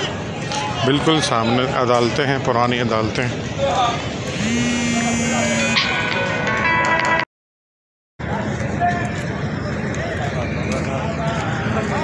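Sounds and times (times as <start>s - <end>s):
traffic noise: 0.0s - 7.2s, 8.2s - 12.0s
vehicle horn: 4.4s - 6.0s
musical horn tones: 4.4s - 6.5s.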